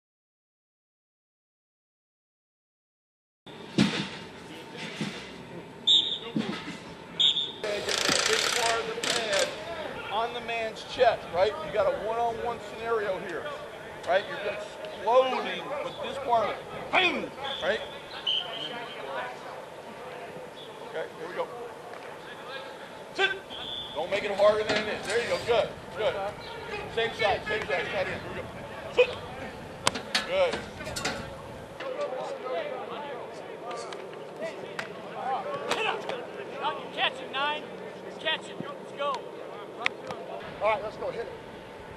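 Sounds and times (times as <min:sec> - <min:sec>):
men talking in background: 0:04.4 - 0:41.5
distant shouting voices: 0:07.2 - 0:41.8.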